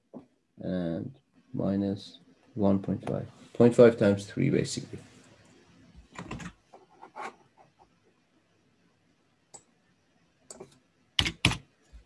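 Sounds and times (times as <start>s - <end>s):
computer keyboard keystrokes: 11.2s - 11.6s.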